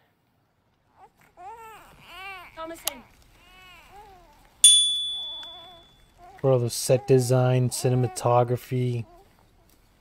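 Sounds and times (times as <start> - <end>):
faint infant cooing: 0.9 - 4.6, 5.5 - 9.8
notification bell ding: 4.6 - 6.0.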